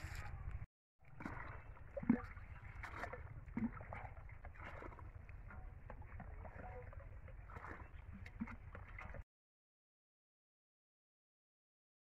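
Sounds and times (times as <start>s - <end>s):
outdoor background noise: 0.0s - 9.2s
water sloshing and splashing: 0.0s - 9.3s.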